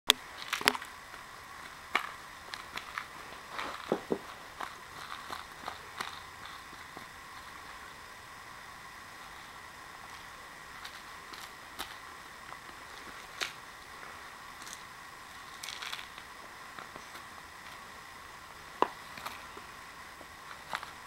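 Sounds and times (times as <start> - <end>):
rattle toy clicking: 1.6 - 3.9, 4.6 - 6.8, 10.8 - 12.0, 15.5 - 16.2.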